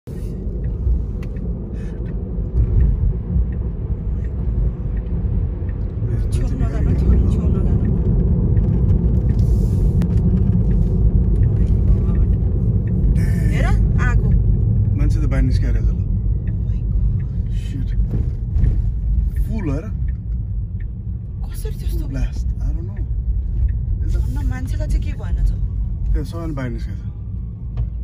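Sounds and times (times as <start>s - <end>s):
car cabin road noise: 0.0s - 28.0s.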